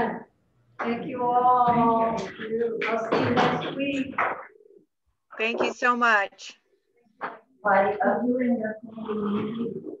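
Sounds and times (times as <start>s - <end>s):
voices talking through video call: 0.0s - 10.0s.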